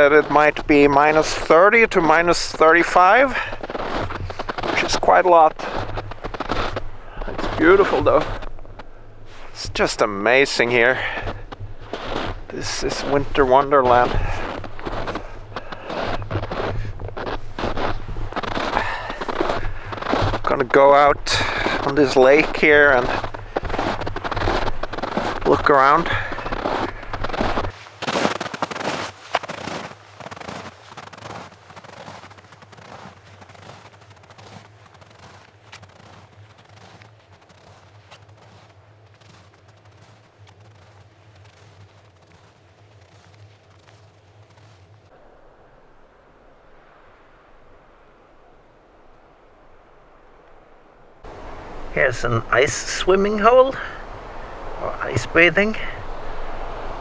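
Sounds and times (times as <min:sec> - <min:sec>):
footsteps crunching in snow: 0:00.0 - 0:49.2, 0:51.2 - 0:57.0.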